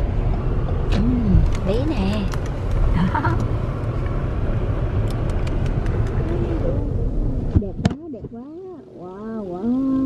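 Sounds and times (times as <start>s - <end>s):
engine and tyre rumble in car: 0.0s - 10.0s.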